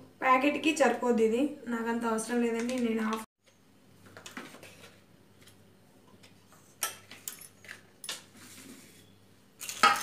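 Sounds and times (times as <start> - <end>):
steel bowls and utensils clinking: 6.5 - 10.0.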